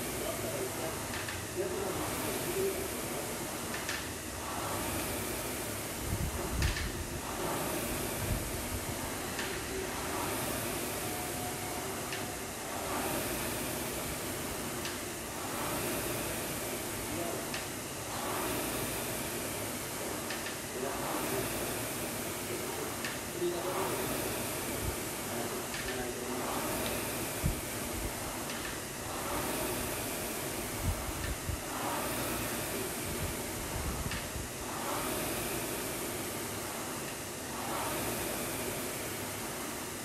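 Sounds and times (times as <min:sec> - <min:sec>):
rowing machine fan whirring: 0:00.0 - 0:40.0.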